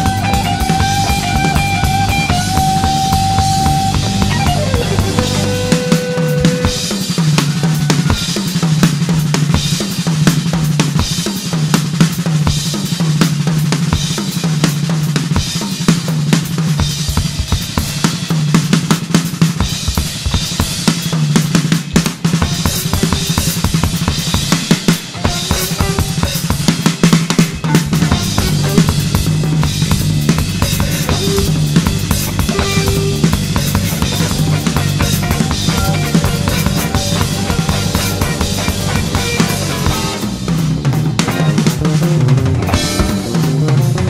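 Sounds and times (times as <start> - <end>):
busy drum kit: 0.0 - 44.0
low sustained bass: 32.9 - 40.6.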